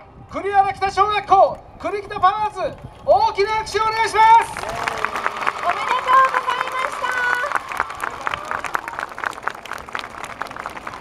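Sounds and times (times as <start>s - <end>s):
crowd clapping: 4.0s - 11.0s.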